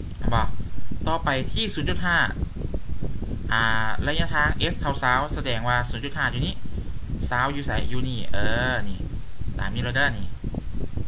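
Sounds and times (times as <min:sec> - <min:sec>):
low background noise: 0:00.0 - 0:11.0
man speaking: 0:00.2 - 0:02.4, 0:03.5 - 0:06.6, 0:07.2 - 0:10.4.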